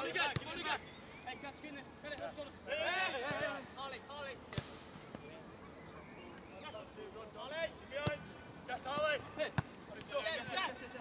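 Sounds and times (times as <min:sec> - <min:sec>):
players' voices calling: 0:00.0 - 0:11.0.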